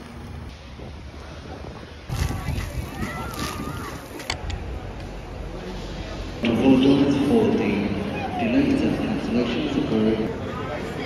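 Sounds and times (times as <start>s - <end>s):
low city rumble: 0.0s - 11.0s.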